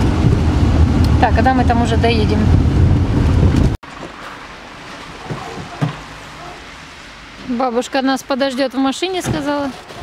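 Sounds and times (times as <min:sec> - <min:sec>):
car rumble inside cabin: 0:00.0 - 0:03.8
wind buffeting microphone: 0:00.0 - 0:03.8.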